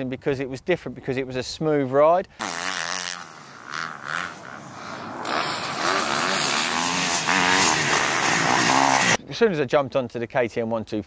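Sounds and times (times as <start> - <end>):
dirt bike engine revving: 2.4 - 9.2.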